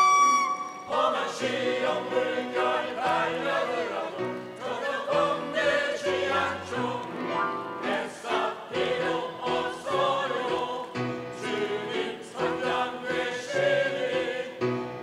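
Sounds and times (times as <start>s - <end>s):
mixed choir singing: 0.7s - 15.0s
instrumental accompaniment: 6.2s - 9.7s.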